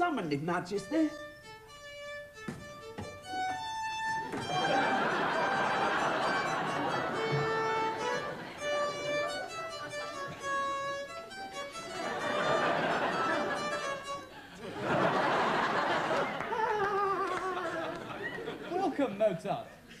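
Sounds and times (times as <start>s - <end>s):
violin playing quick notes: 0.9s - 12.0s
studio audience laughter: 4.5s - 10.5s, 12.0s - 18.8s.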